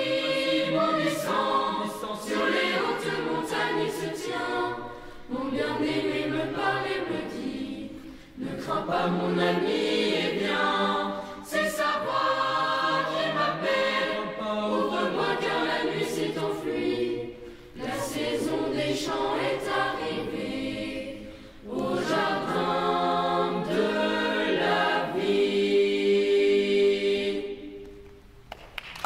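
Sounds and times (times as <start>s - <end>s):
boys' choir singing a cappella: 0.0s - 27.8s.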